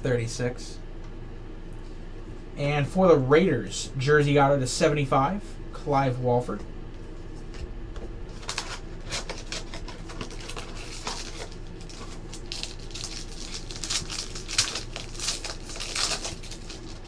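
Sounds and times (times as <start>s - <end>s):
foil pack crinkling and tearing: 8.3s - 17.0s.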